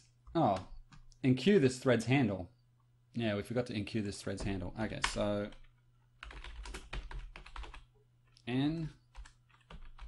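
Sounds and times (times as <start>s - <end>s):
computer keyboard typing: 4.4s - 8.4s, 9.1s - 10.0s.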